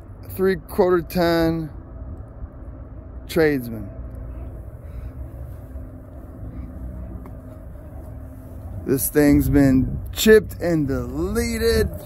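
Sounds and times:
engine idling: 0:02.4 - 0:12.0.

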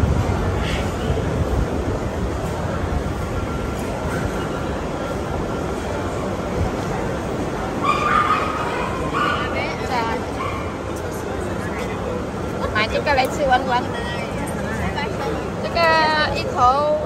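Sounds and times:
background chatter: 0:00.0 - 0:17.0.

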